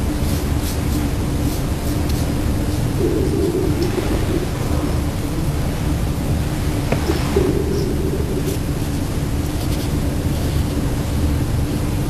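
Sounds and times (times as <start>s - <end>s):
faint hum: 0.0s - 12.0s
low rumble: 2.9s - 9.6s.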